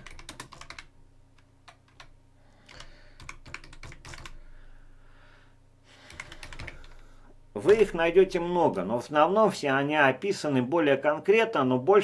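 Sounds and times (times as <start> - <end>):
computer keyboard typing: 0.0 - 4.4, 6.0 - 7.0.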